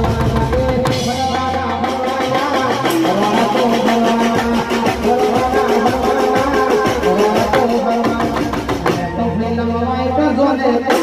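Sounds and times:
regular percussion beat: 0.0s - 11.0s
sustained bass line: 0.0s - 11.0s.

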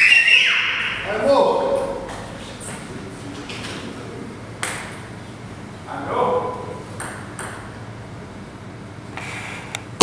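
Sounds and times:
table tennis ball bouncing: 4.6s - 5.0s, 7.0s - 7.8s.

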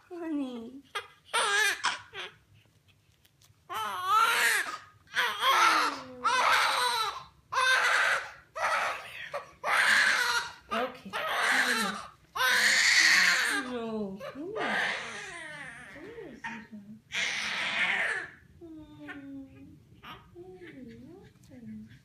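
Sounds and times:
baby crying: 0.9s - 2.4s, 3.7s - 18.4s.

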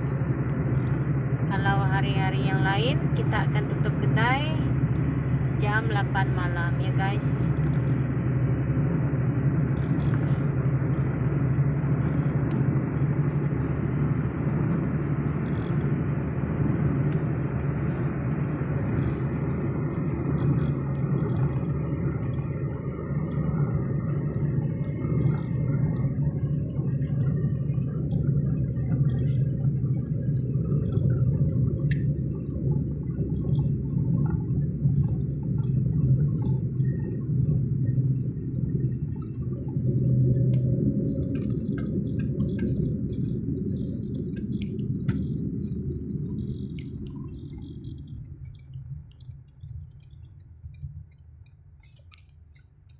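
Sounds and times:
car engine and tyre rumble: 0.0s - 52.9s.

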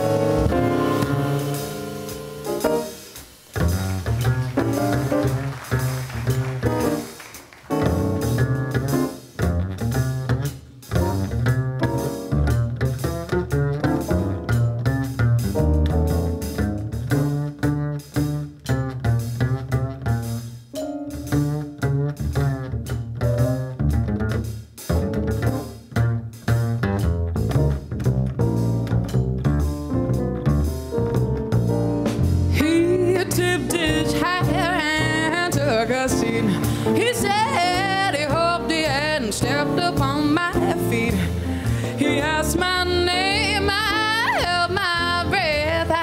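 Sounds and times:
double bass plucked notes: 0.0s - 7.1s, 7.7s - 46.0s.

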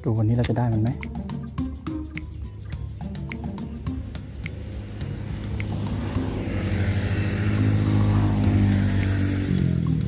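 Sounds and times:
vehicle passing: 3.6s - 10.0s.

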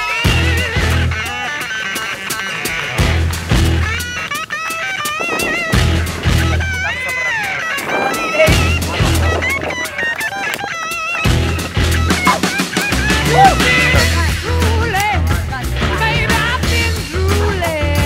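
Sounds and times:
bass line: 0.3s - 1.3s, 3.0s - 4.0s, 5.4s - 9.8s, 11.3s - 18.0s
song with guitar and singing: 11.3s - 18.0s.

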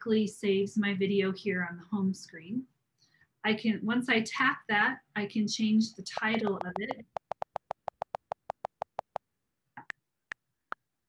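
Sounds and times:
on-screen keyboard clicks: 6.1s - 9.2s.

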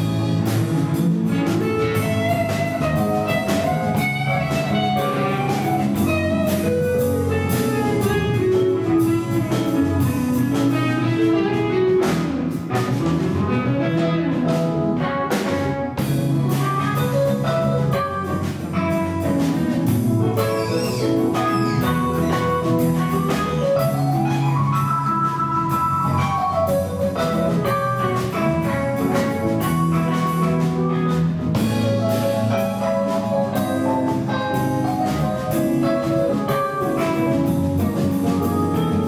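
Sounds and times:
drum kit with cymbals: 0.0s - 39.0s
electric bass: 0.0s - 39.0s
keyboard: 0.0s - 39.0s
electric guitar solo: 1.2s - 39.0s.

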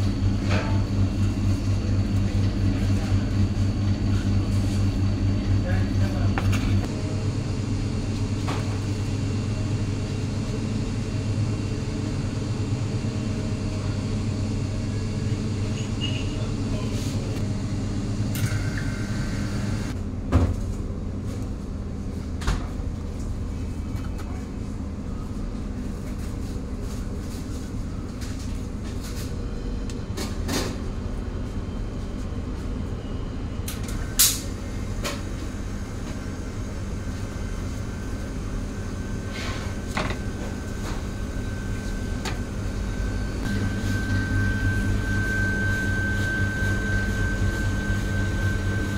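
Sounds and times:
kitchen machine hum: 0.0s - 48.9s.

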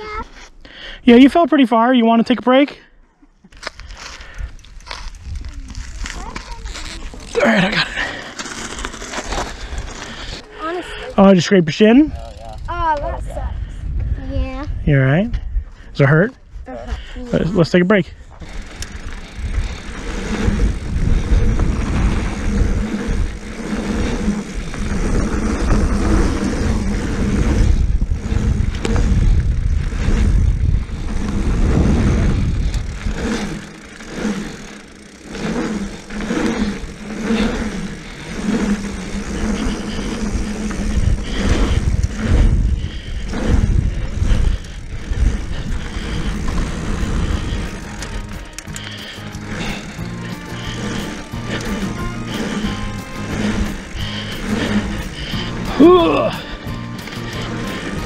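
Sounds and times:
tyres rolling on loose dirt: 3.6s - 10.8s, 18.2s - 58.0s
wind rushing over microphone: 4.4s - 8.1s, 12.0s - 58.0s.

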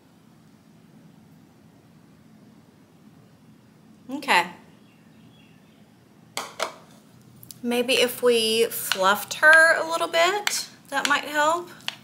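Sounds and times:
bowl knocking on countertop: 6.4s - 6.8s.

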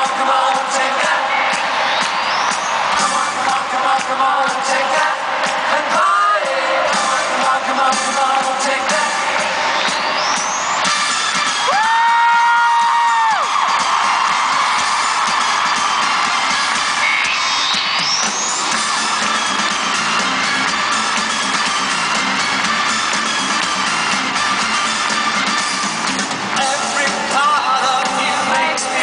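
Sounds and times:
concert crowd cheering and screaming: 0.0s - 29.0s
loud live pop music: 0.0s - 29.0s.

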